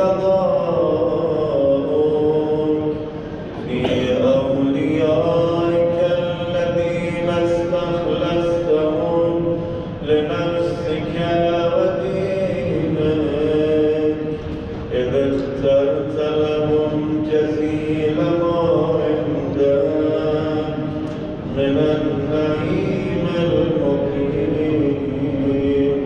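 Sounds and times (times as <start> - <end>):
man chanting a prayer: 0.0 - 26.0.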